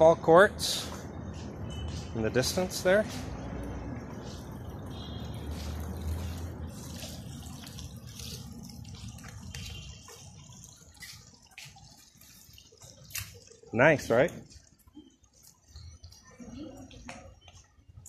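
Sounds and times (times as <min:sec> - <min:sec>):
water trickling and dripping: 0:00.0 - 0:18.0.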